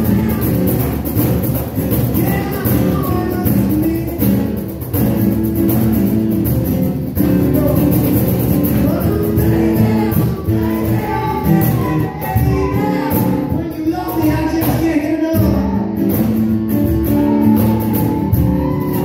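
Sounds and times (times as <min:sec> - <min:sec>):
man singing: 0:00.0 - 0:05.4, 0:07.0 - 0:19.0
acoustic guitar strummed: 0:00.0 - 0:19.0
conga drum played by hand: 0:00.0 - 0:19.0.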